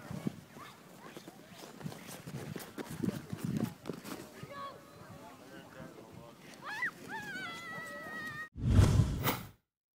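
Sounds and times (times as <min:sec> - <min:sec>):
loud outro sound: 0:08.6 - 0:09.5.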